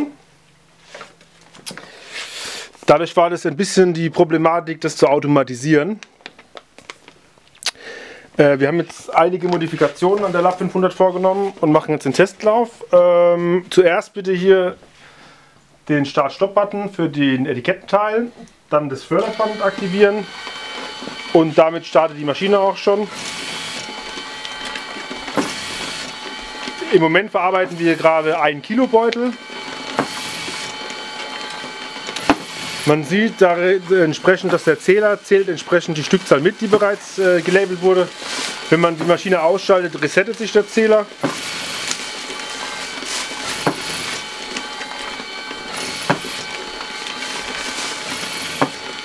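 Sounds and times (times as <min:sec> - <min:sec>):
labelling machine whine: 0:19.0 - 0:49.0
sharp machine clicks: 0:25.3 - 0:36.9.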